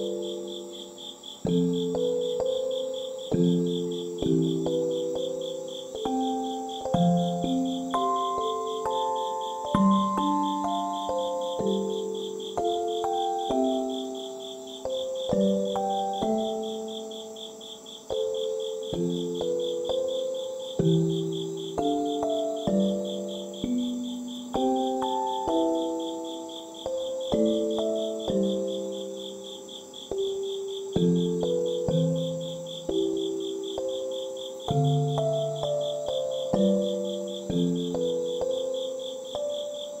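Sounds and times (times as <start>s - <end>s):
crickets chirping: 0.0s - 40.0s
gentle keyboard melody: 0.0s - 40.0s.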